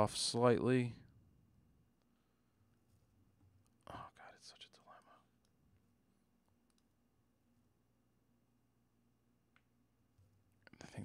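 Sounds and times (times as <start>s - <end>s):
man whispering: 3.8s - 5.4s, 10.7s - 11.0s.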